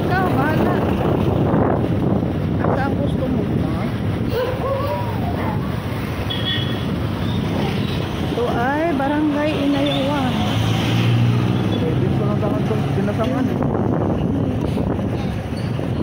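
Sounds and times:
wind buffeting microphone: 0.0 - 10.3, 11.0 - 16.0
street traffic: 0.0 - 16.0.

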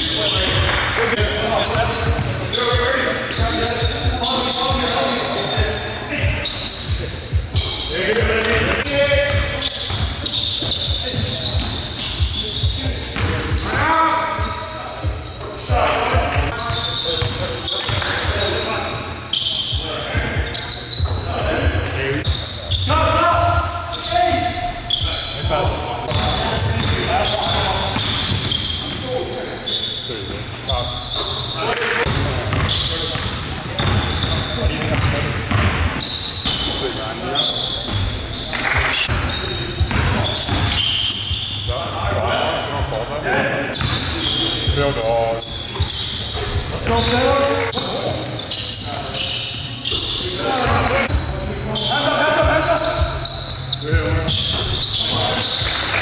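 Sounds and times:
players calling out: 0.0 - 56.0
basketball bouncing on hardwood: 34.8 - 35.8.

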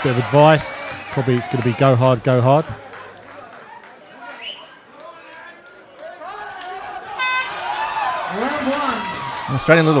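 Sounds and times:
crowd shouting: 6.0 - 10.0
horn blast: 7.2 - 7.6.

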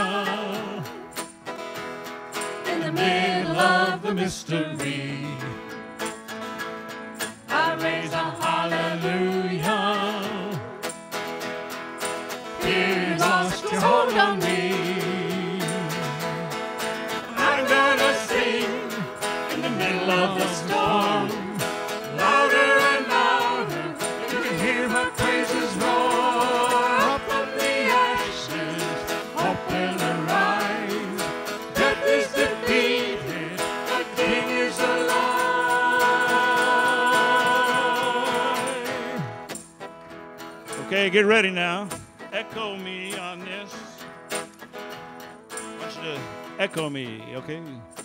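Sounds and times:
worship song with instruments: 0.0 - 48.0.

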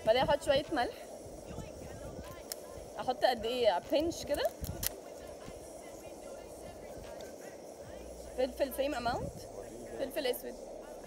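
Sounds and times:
gas stove burning: 0.0 - 11.0.

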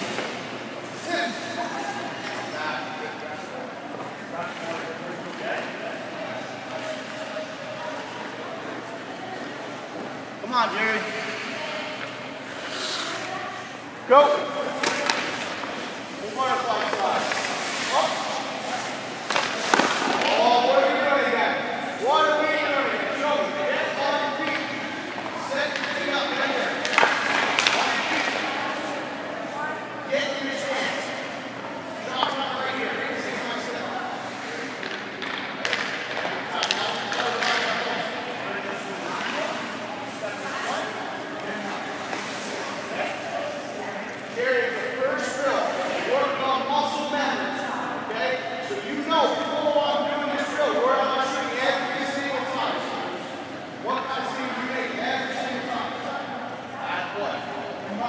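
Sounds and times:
voices talking in an echoing rink: 0.0 - 58.0.

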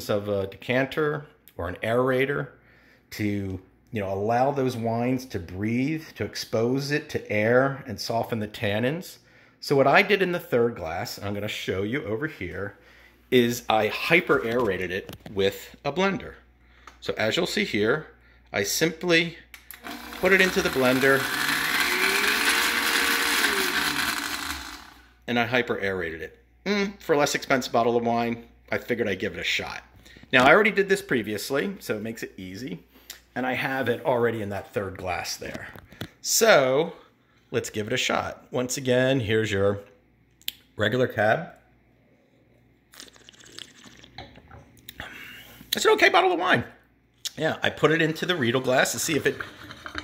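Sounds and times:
blender motor running: 19.7 - 25.2
wet sipping and swishing of wine: 42.1 - 44.2.

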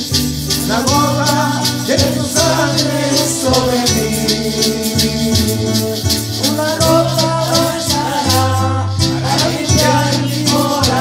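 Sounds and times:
shaker beat: 0.0 - 11.0
man singing: 0.5 - 11.0.

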